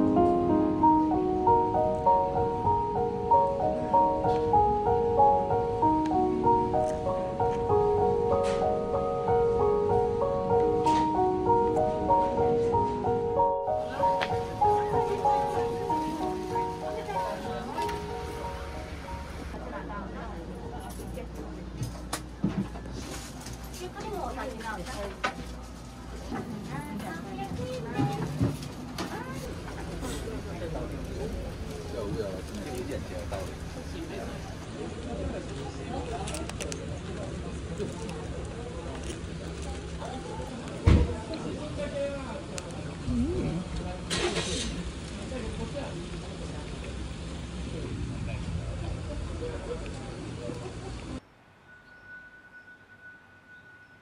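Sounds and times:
people's voices: 0.2s - 51.2s
vehicle engine hum: 0.3s - 23.7s, 25.4s - 40.8s
short hiss: 44.1s - 44.8s.

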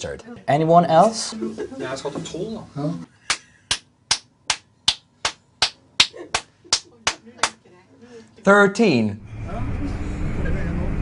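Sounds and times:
man clapping hands: 3.3s - 7.6s.

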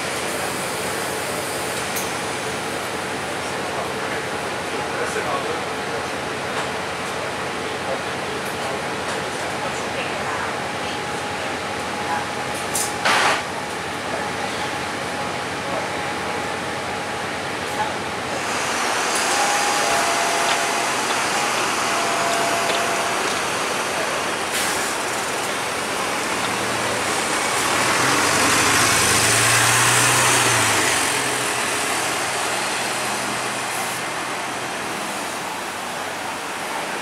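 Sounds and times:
bus engine running: 0.0s - 37.0s.

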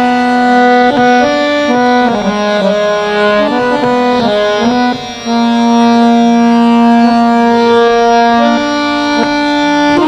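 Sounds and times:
harmonium holding notes: 0.0s - 10.0s.

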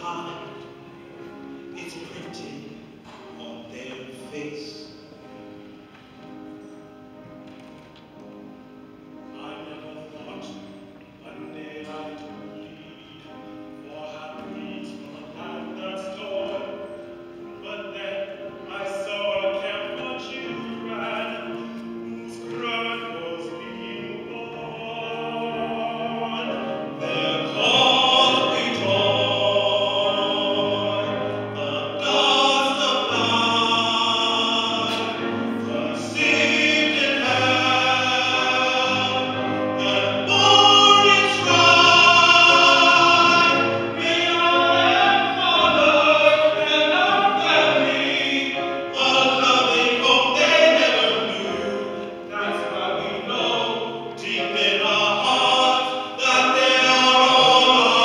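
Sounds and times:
choir singing: 0.0s - 5.4s, 9.3s - 58.0s
string ensemble: 0.0s - 58.0s
tenor voices singing: 9.3s - 58.0s.

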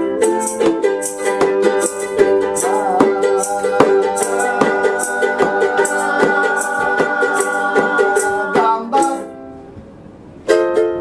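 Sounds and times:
ukuleles strummed: 0.0s - 11.0s
man singing: 1.7s - 9.4s.

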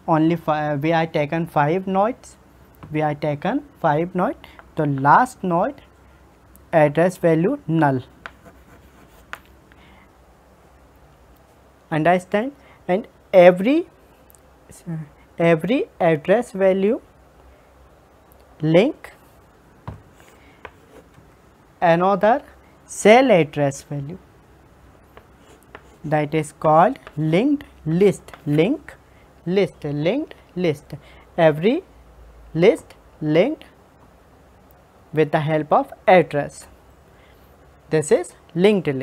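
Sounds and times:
chalk scratching on chalkboard: 8.2s - 9.4s, 25.1s - 26.1s
chalk tapping on chalkboard: 8.2s - 9.6s, 25.1s - 26.0s, 26.9s - 27.2s.

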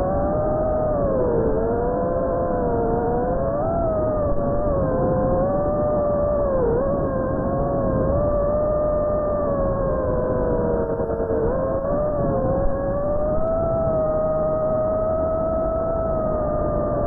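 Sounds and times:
drone motors whining: 0.0s - 17.0s.

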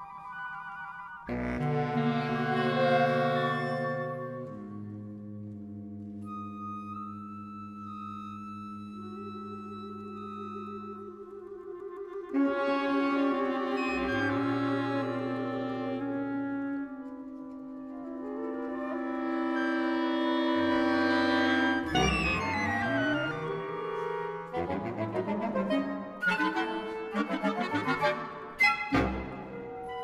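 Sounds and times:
contemporary ensemble music: 0.0s - 30.0s.

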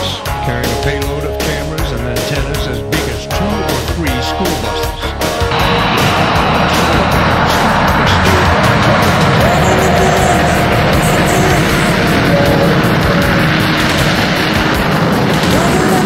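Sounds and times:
rock music: 0.0s - 16.0s
jet engines at high power: 5.2s - 16.0s.

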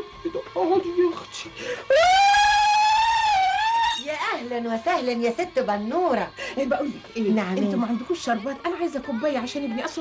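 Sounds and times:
woman ululating: 1.9s - 4.2s.

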